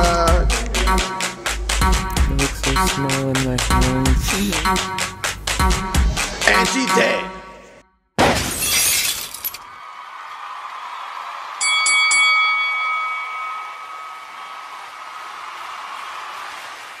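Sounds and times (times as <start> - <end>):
glass shattering: 8.2 - 9.6
bell-like strikes: 11.6 - 14.4
held chime tone: 11.6 - 14.4.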